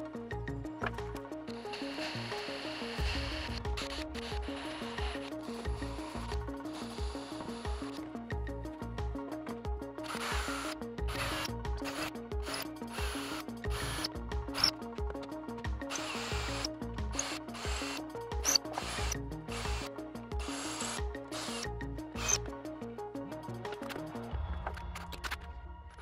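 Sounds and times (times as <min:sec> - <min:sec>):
background music with steady beat: 0:00.0 - 0:26.0
cordless drill boring into wood: 0:10.1 - 0:14.7, 0:15.9 - 0:21.6, 0:22.2 - 0:22.4.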